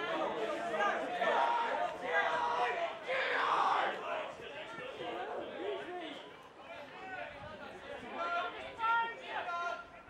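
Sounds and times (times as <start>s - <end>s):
people shouting: 0.0s - 4.2s.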